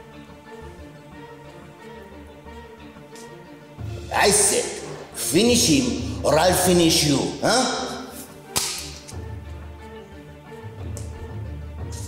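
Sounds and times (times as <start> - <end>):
low music drone: 0.0 - 12.0
sharp whip-like crack: 8.5 - 9.2.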